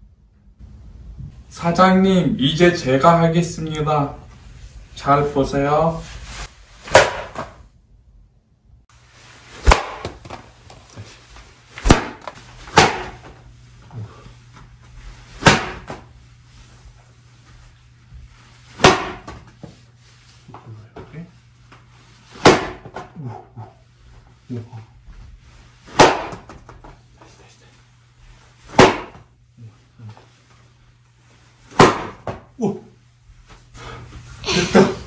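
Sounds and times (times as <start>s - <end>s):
paper tiles slapping onto a mat: 9.6s - 11.1s.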